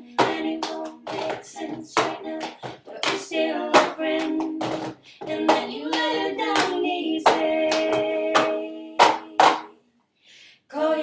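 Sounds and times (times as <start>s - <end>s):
handclaps on the beat: 0.0s - 9.7s
person singing pop melody: 0.0s - 9.7s.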